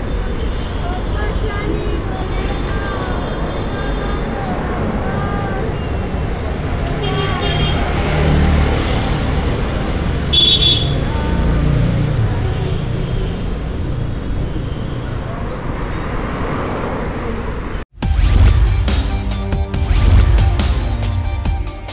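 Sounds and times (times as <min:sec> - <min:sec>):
traffic rumble: 0:00.0 - 0:18.6
people talking: 0:00.8 - 0:05.9.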